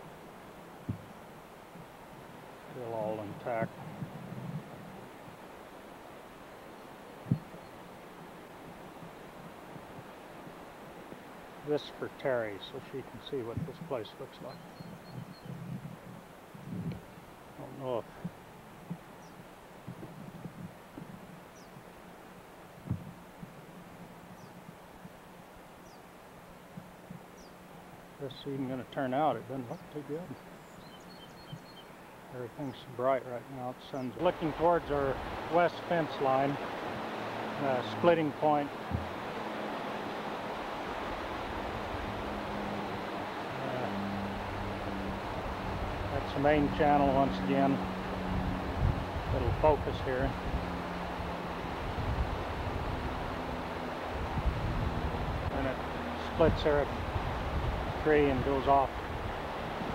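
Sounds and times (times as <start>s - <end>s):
outdoor background noise: 0.0s - 59.9s
steady background hiss: 0.0s - 59.9s
small bird chirping: 14.5s - 15.6s, 29.7s - 32.2s
short low thump: 38.9s - 39.2s.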